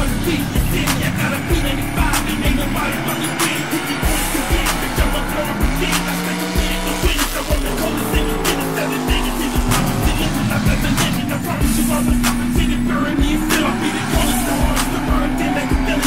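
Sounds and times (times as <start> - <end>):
hip-hop track with steady beat: 0.0 - 16.0
race car engine accelerating: 0.0 - 16.0.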